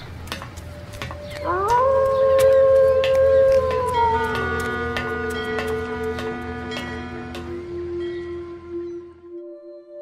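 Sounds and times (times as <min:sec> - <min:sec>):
wolf howling: 0:01.4 - 0:07.3.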